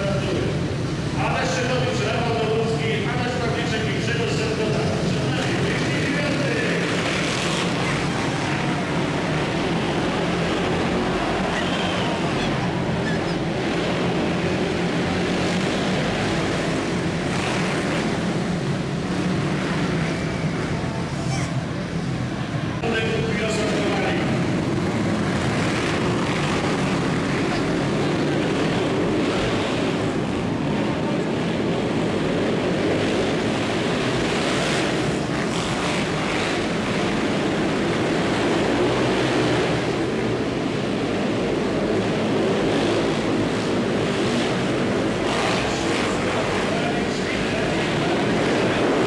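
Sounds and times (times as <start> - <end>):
motorcycle engines revving: 0.0 - 49.0
crowd voices: 1.2 - 16.1, 18.6 - 28.6.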